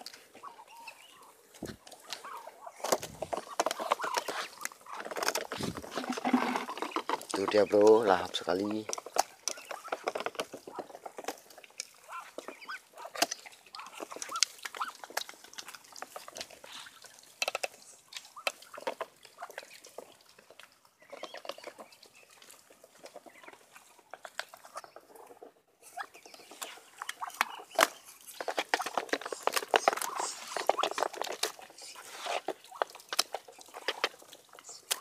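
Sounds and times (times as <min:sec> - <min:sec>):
duck bills pecking metal pan: 0:01.9 - 0:35.0.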